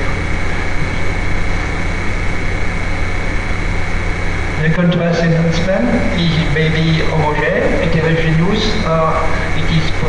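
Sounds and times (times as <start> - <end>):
low hum: 0.0 - 10.0
thin high whine: 0.0 - 10.0.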